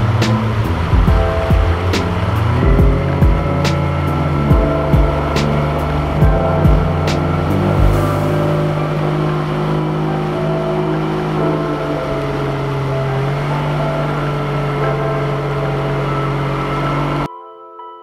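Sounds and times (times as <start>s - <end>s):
low thump: 0.0s - 3.8s
outboard motor running: 0.0s - 17.3s
water rushing: 0.0s - 17.3s
wind: 0.0s - 17.3s.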